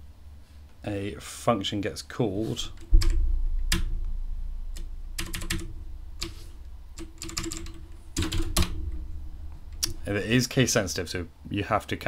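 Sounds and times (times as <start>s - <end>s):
steady low hum: 0.0s - 12.0s
keyboard typing: 4.8s - 6.4s, 7.0s - 8.7s.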